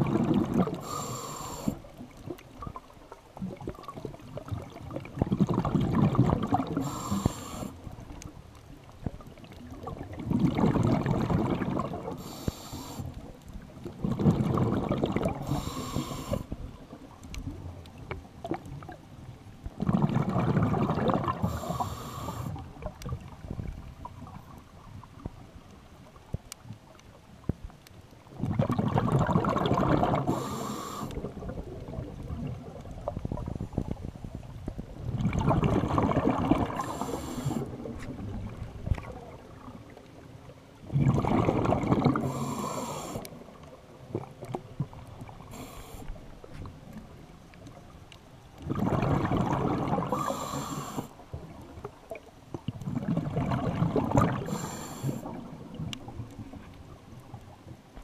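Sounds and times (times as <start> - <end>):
diver exhaling bubbles: 0.0 - 1.8, 3.4 - 7.8, 9.8 - 13.0, 13.9 - 16.5, 19.8 - 23.0, 28.4 - 33.6, 35.1 - 39.7, 40.8 - 43.4, 48.6 - 51.1, 52.7 - 55.9
regulator hiss: 0.8 - 1.8, 6.8 - 7.7, 12.2 - 13.1, 15.5 - 16.4, 21.5 - 22.6, 30.3 - 31.2, 36.8 - 37.6, 42.3 - 43.2.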